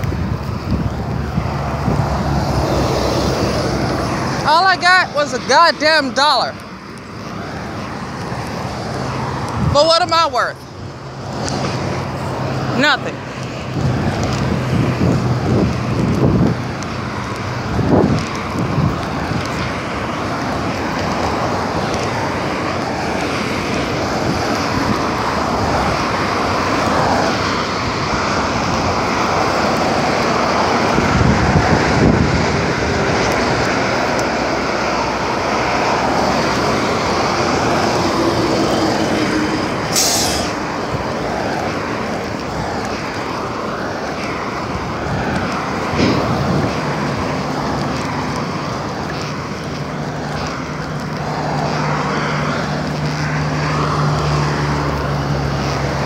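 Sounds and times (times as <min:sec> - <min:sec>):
road traffic passing: 0:00.0 - 0:56.0
vehicle engine humming: 0:00.0 - 0:56.0
brief sharp hiss: 0:39.9 - 0:40.6.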